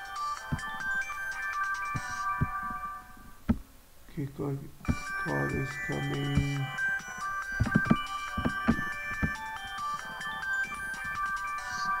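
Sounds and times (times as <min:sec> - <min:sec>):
electronic phone ringtone: 0:00.0 - 0:03.2, 0:04.8 - 0:12.0
low thumps: 0:03.4 - 0:03.7, 0:07.5 - 0:09.4.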